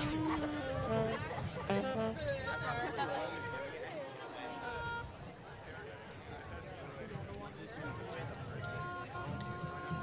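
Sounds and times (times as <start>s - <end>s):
wind band holding a note: 0.0s - 3.6s
crowd chatter: 0.0s - 10.0s.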